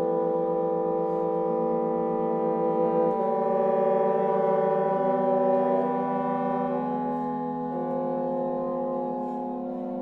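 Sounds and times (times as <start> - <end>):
wind quintet playing sustained chords: 0.0 - 10.0.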